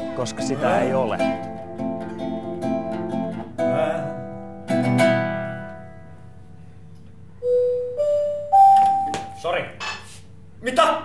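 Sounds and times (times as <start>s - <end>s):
electronic chime rising notes: 7.4s - 9.4s.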